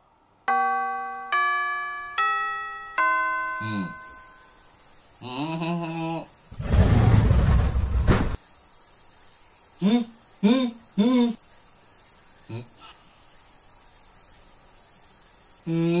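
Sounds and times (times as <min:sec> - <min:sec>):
school chime bell notes: 0:00.5 - 0:04.6
loud burst of rushing noise: 0:06.5 - 0:08.4
short voice-like calls: 0:09.8 - 0:11.4.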